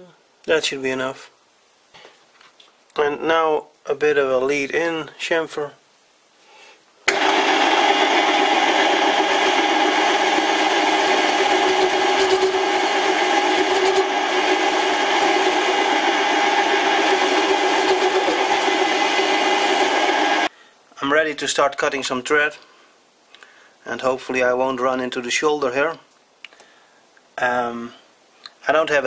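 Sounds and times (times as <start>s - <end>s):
lathe tool cutting steel: 7.1s - 20.5s
metal lathe motor and gear whine: 7.1s - 20.5s.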